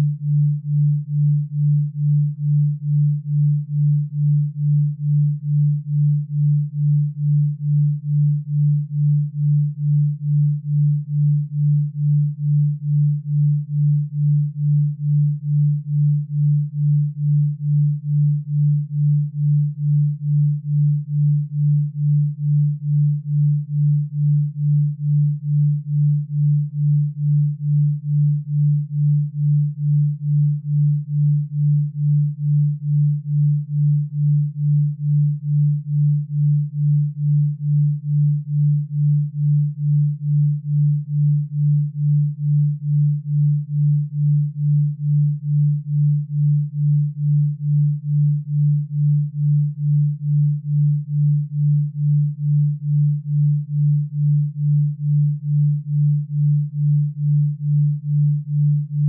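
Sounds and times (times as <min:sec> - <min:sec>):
pulsing low sine tone: 0:00.0 - 0:59.0.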